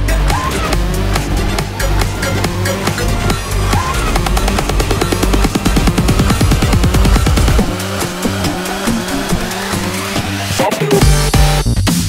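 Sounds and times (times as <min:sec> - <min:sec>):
high hissing synth layer: 0:00.0 - 0:11.6
sustained synth notes: 0:00.0 - 0:11.6
electronic dance music: 0:00.0 - 0:12.0.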